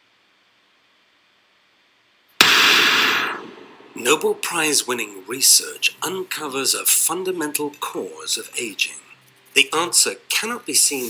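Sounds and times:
impact sound effect: 0:02.4 - 0:05.1.

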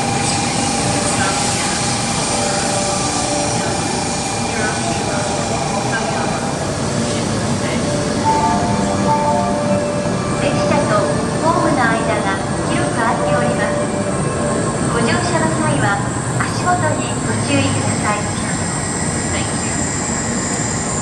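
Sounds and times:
voices: 0:00.0 - 0:20.4
train rolling rumble: 0:00.0 - 0:21.0.

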